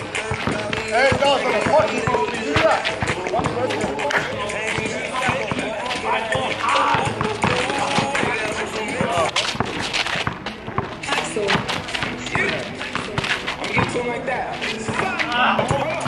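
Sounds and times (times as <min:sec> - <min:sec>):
basketball bouncing on asphalt: 0:00.0 - 0:16.0
players' footsteps: 0:00.0 - 0:16.0.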